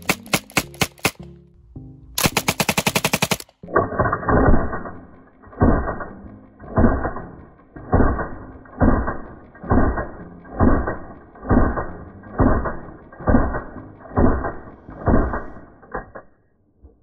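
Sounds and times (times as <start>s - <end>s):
slowed gunfire booms: 4.4s - 15.7s.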